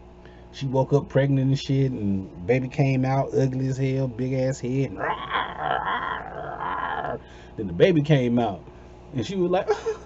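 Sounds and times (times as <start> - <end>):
man telling a story: 0.5 - 5.1, 7.5 - 10.0.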